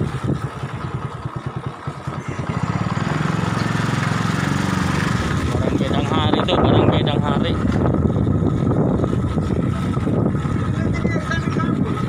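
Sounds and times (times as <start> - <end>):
wind rushing over microphone: 0.0 - 1.0, 2.2 - 12.0
motorcycle engine running: 0.0 - 12.0.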